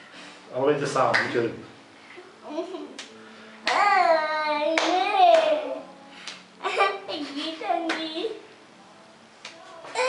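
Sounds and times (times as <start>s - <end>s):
hand clap: 1.1s - 1.4s, 3.0s - 3.9s, 4.7s - 6.5s, 7.8s - 8.1s, 9.4s - 9.6s.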